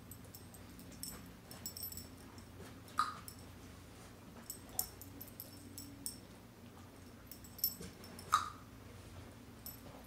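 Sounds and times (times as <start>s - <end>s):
dog tags jingling: 0.0s - 2.5s, 4.4s - 6.3s, 7.0s - 8.4s.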